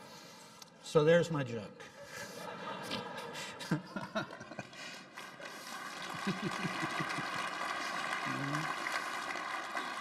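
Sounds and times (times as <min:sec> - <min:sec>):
large audience applauding: 0:04.0 - 0:10.0.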